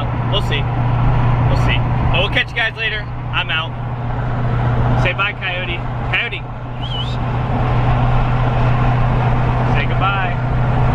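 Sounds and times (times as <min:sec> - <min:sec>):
engine drone: 0:00.0 - 0:10.9
road and wind noise: 0:00.0 - 0:10.9
short high squeak: 0:06.7 - 0:07.2.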